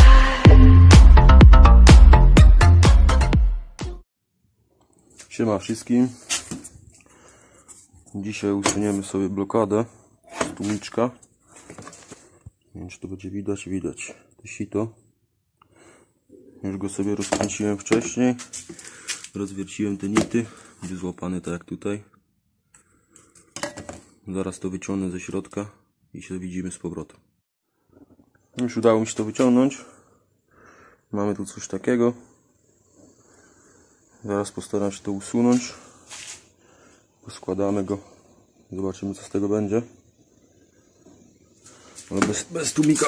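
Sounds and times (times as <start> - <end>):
person speaking: 8.1 - 11.2, 42.1 - 43.0.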